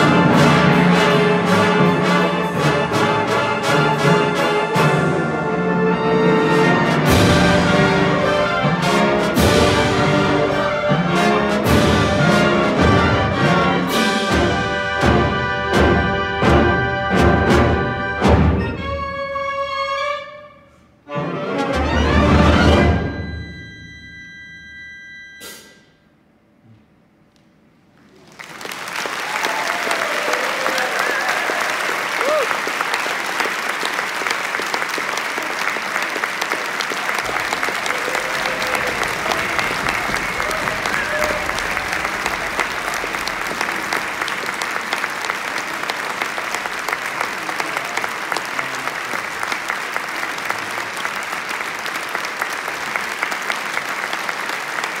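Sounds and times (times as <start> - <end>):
audience applauding: 28.0 - 55.0
people cheering: 28.2 - 55.0.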